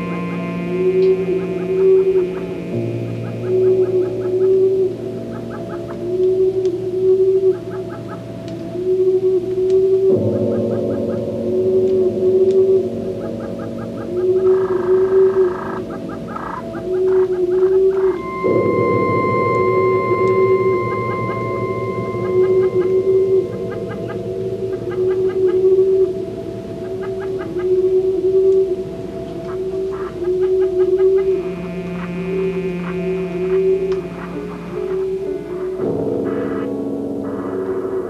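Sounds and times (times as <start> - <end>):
steady higher tones: 0.0 - 38.0
sustained electronic drone: 0.0 - 38.0
warbling electronic tone: 0.0 - 38.0.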